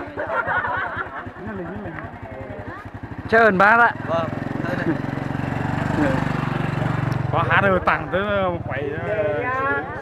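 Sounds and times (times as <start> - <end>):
motorbike engine idling: 0.0 - 10.0.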